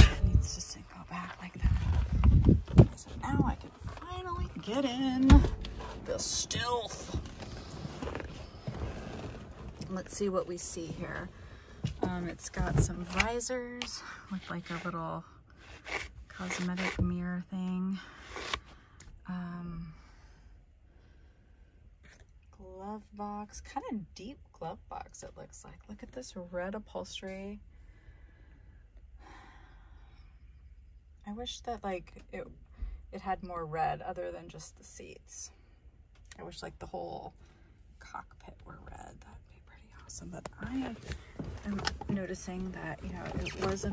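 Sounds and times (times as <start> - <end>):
faint low rumble: 0.0 - 15.4
clothing and seat rustling: 0.0 - 17.4, 40.1 - 43.9.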